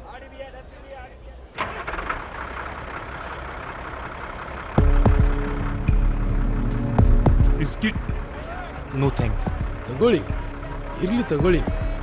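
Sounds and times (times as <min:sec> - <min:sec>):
bus cabin rush: 0:00.9 - 0:12.0
low engine rumble: 0:01.0 - 0:12.0.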